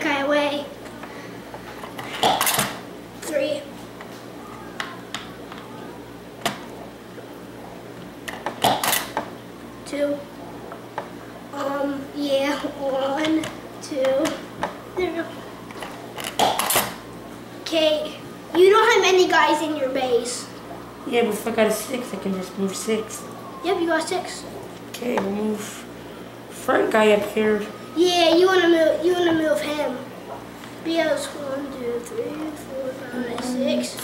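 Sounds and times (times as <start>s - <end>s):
children's voices: 3.2s - 6.2s, 11.5s - 15.8s, 17.6s - 24.6s, 27.8s - 34.0s.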